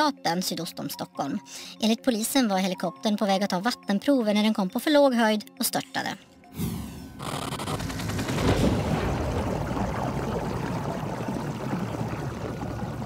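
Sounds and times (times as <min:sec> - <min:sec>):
dramatic music: 0:06.4 - 0:12.7
underwater churning water and bubbles: 0:07.3 - 0:13.0.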